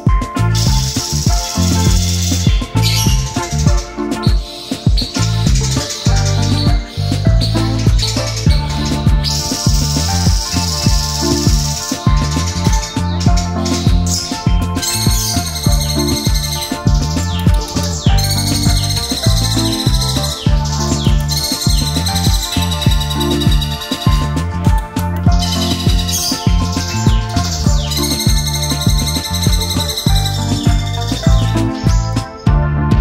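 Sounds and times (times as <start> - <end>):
background music with steady beat: 0.0 - 33.0
birds chirping and trilling: 0.0 - 33.0.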